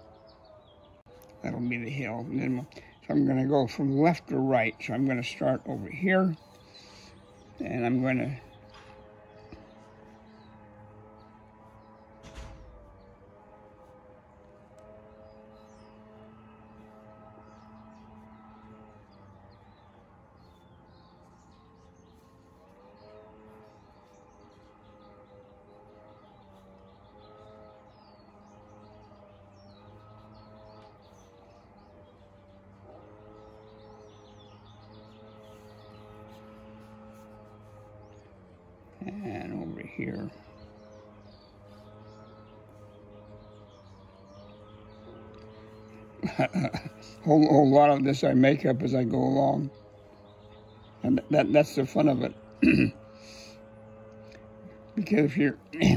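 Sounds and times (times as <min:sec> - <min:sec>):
birds chirping: 0:00.0 - 0:55.9
steady hum of held tones: 0:00.0 - 0:55.9.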